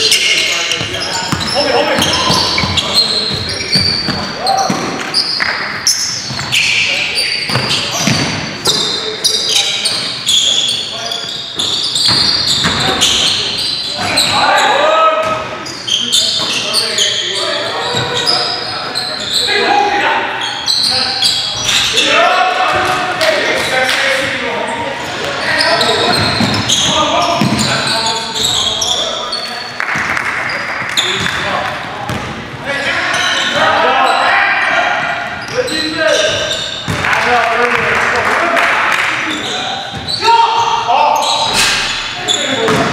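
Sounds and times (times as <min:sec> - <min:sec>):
sneakers squeaking on gym floor: 0:00.0 - 0:37.1, 0:39.2 - 0:42.9
players' voices: 0:00.0 - 0:42.9
basketball bouncing: 0:00.8 - 0:05.0, 0:07.5 - 0:08.5, 0:12.0 - 0:13.2, 0:27.3 - 0:27.7, 0:32.1 - 0:32.4, 0:42.7 - 0:42.9.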